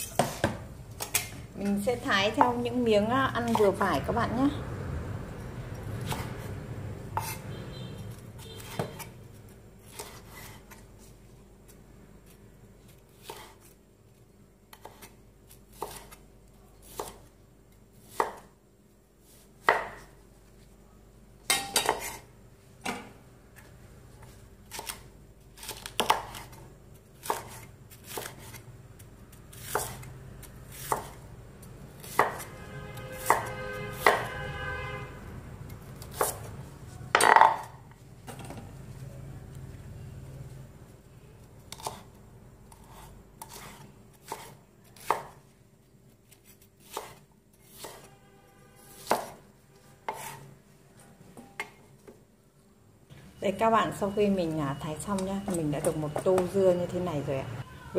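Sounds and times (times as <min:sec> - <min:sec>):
knife slicing on wooden board: 0:15.7 - 0:16.2, 0:30.7 - 0:31.2, 0:42.7 - 0:45.3, 0:46.4 - 0:48.1, 0:48.9 - 0:49.4, 0:50.1 - 0:50.4.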